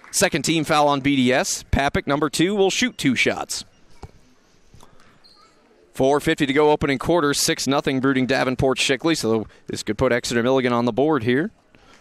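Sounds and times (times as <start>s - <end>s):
faint gymnasium background: 0.0s - 12.0s.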